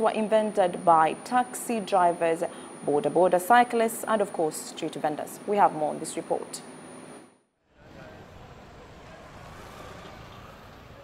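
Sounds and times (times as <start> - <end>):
low street traffic: 7.7 - 11.0.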